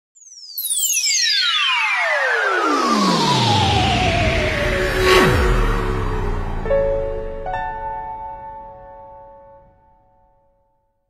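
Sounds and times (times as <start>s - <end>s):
synthesized falling tones: 1.4s - 10.0s.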